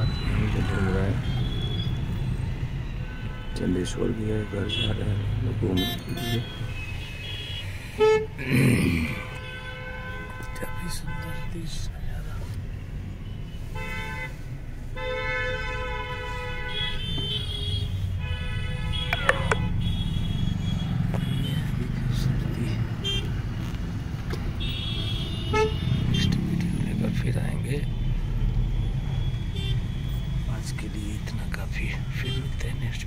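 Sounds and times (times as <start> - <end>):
road noise inside car: 0.0 - 33.0
vehicle horns honking: 3.0 - 8.4, 9.1 - 11.5, 13.2 - 14.4, 15.0 - 21.7, 23.0 - 23.3, 24.5 - 26.5, 28.0 - 30.2.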